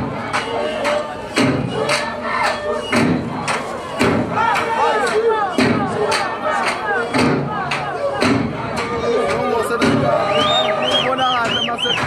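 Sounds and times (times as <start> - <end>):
crowd calling out: 0.0 - 12.0
heavy foot stamps on a stage: 2.9 - 4.8, 5.6 - 6.3, 7.2 - 10.7.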